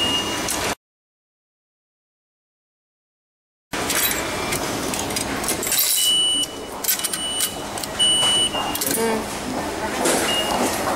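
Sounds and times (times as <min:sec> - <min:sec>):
high electronic beep: 0:06.0 - 0:08.8.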